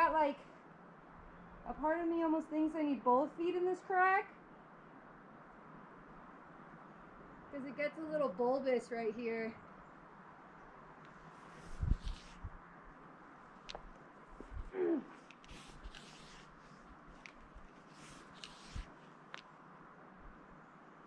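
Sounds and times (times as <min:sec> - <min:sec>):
faint rustling: 0:11.0 - 0:19.7.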